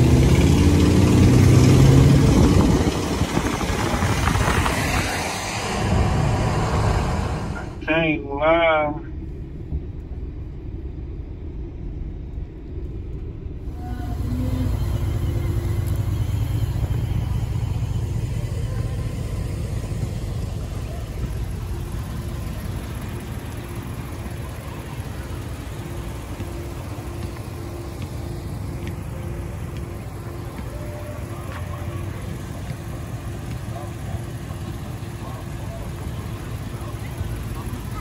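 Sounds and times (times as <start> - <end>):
vehicle engine rumble: 0.0 - 38.0.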